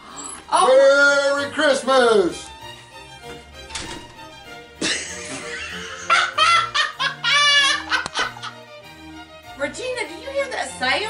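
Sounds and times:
background music: 0.0s - 11.0s
laughter: 4.8s - 8.6s.

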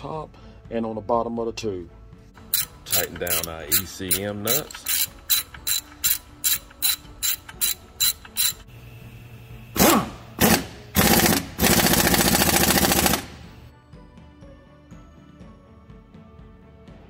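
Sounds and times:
hand ratchet clicking: 2.4s - 8.7s.

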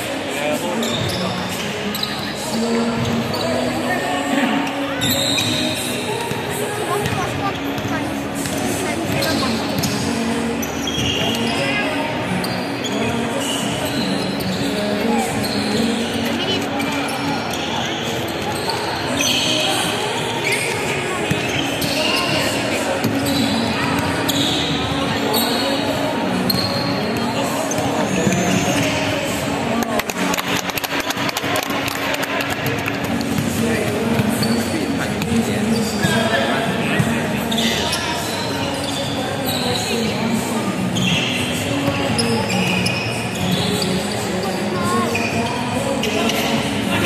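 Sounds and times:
sneakers squeaking: 0.0s - 47.0s.

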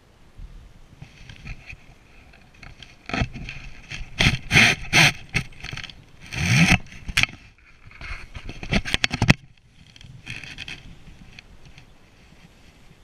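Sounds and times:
fly reel clicker ratcheting: 2.6s - 11.8s.

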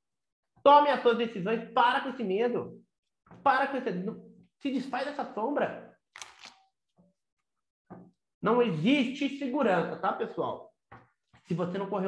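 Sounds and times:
cards riffle-shuffled: 6.1s - 6.7s.

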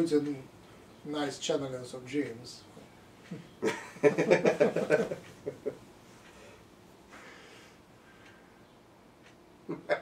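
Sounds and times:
person laughing: 9.7s - 10.0s.

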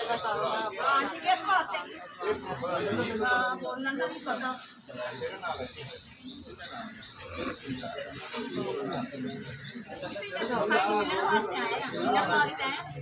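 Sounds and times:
men talking: 0.0s - 12.5s.

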